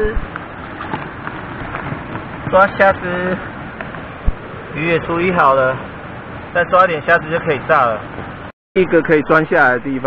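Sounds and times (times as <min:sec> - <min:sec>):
stream running over rocks: 0:00.0 - 0:08.5.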